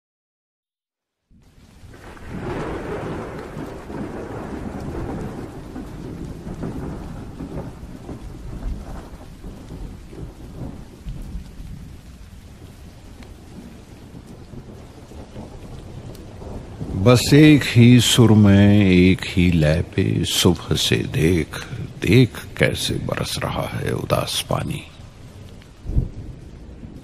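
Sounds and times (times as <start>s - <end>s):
heavy rain: 1.3s - 27.0s
rolling thunder: 1.5s - 27.0s.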